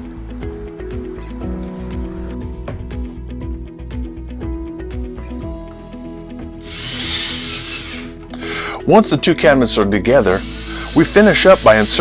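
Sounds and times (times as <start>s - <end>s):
background music: 0.0s - 12.0s
cordless drill running: 6.6s - 8.2s, 10.2s - 12.0s.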